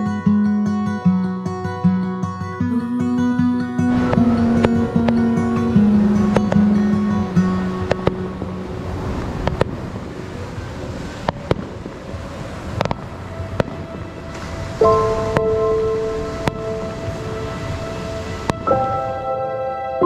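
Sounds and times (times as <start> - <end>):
wind: 0.0 - 20.0
surf: 2.6 - 20.0
fireworks bangs: 3.9 - 18.7.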